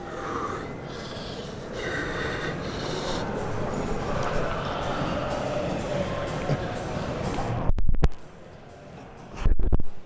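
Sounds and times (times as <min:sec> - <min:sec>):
man breathing forcefully: 0:00.0 - 0:05.8.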